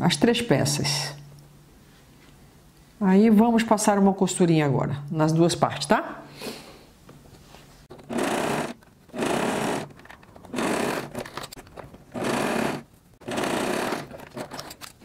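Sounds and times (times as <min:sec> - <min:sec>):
electric sewing machine stitching: 0:08.0 - 0:14.6.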